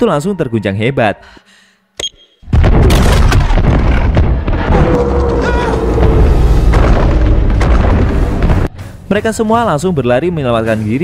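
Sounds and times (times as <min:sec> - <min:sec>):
booms and cracks: 0:02.5 - 0:08.7
deep quake rumbling: 0:02.6 - 0:09.0.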